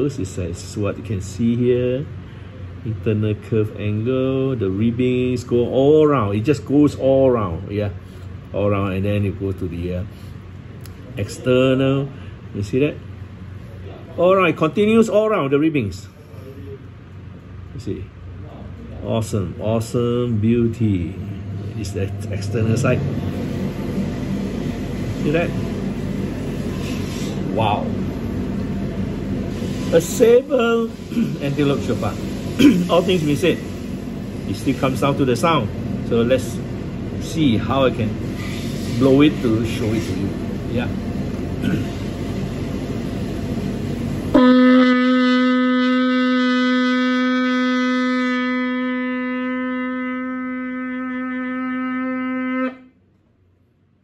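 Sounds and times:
air conditioner humming: 0:00.0 - 0:54.0
horn blown in long note: 0:44.3 - 0:53.0.

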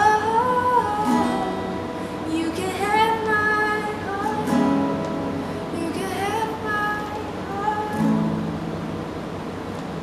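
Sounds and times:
woman singing: 0:00.0 - 0:08.5
strummed acoustic guitar: 0:00.0 - 0:09.7.

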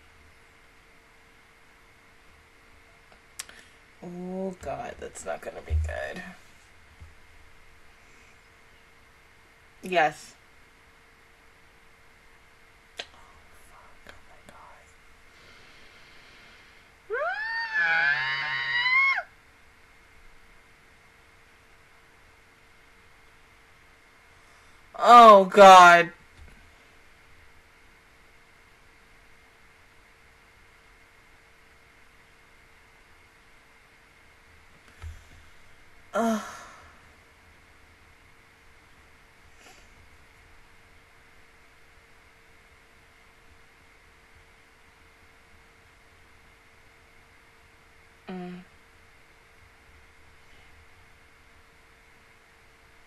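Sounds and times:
woman's distressed squeal: 0:17.1 - 0:19.3
woman sighing: 0:36.2 - 0:37.0, 0:48.3 - 0:48.7.

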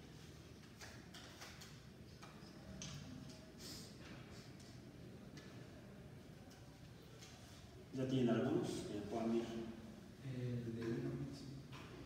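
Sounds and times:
faint clicks and ticks: 0:06.4 - 0:07.4.

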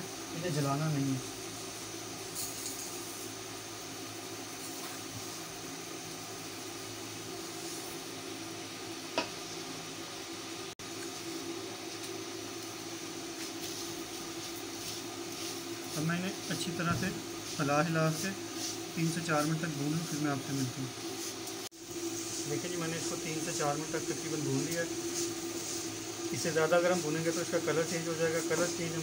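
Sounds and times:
vermicelli roasting in a frying pan: 0:00.0 - 0:29.0.

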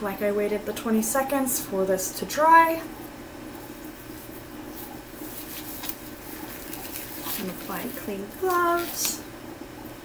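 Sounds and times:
low room hum: 0:00.0 - 0:10.0
rubber glove rustling: 0:03.6 - 0:09.2.

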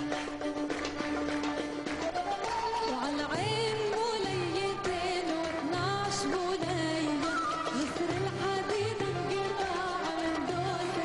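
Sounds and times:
instrumental accompaniment: 0:00.0 - 0:11.0
woman singing: 0:02.0 - 0:11.0.

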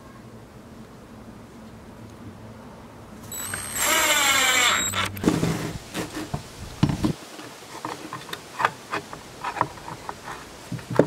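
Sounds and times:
electric drill driving screw: 0:03.2 - 0:05.3.

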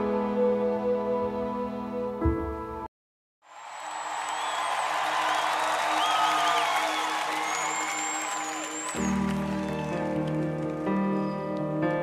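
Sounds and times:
crowd cheering and applause: 0:03.5 - 0:11.6
whistles from crowd: 0:03.6 - 0:10.1.

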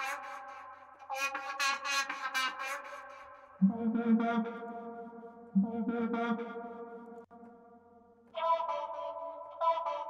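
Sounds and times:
processed vocal loop: 0:00.0 - 0:07.0, 0:08.3 - 0:10.0.

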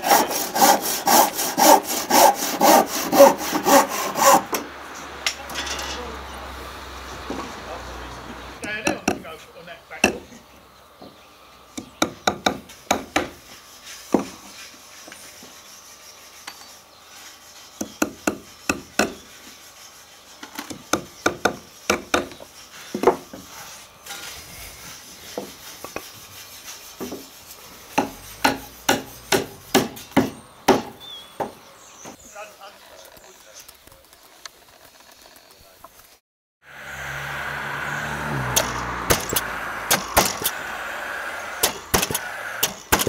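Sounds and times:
hammer driving nails into wood: 0:41.6 - 0:43.0.

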